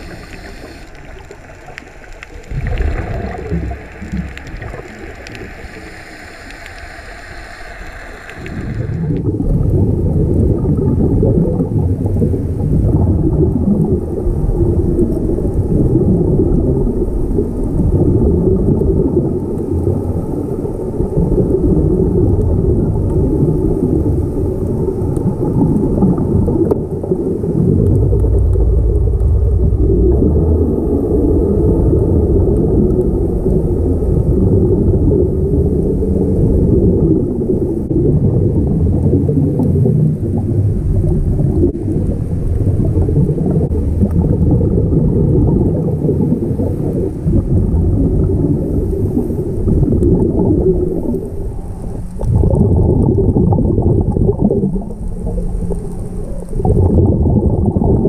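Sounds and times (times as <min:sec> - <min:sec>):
underwater rumble of bubbles: 0:00.0 - 0:58.0.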